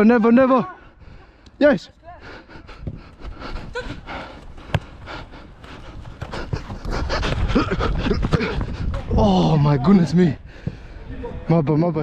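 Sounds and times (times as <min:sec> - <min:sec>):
heavy panting: 0:02.2 - 0:09.1.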